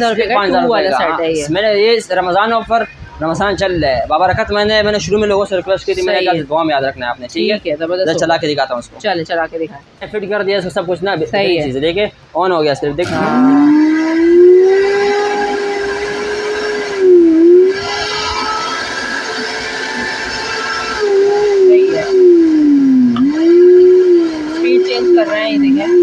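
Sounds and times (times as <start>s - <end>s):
blender motor whining: 13.0s - 26.0s.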